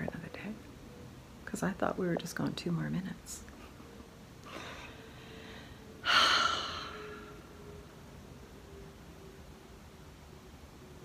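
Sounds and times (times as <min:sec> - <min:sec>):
woman sighing: 0:06.0 - 0:07.4.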